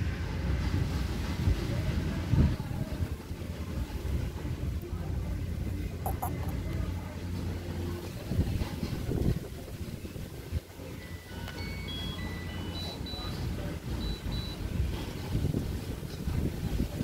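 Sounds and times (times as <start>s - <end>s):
wind rumble on microphone: 0.0s - 11.0s, 13.5s - 17.0s
short high electronic notes: 6.1s - 6.5s.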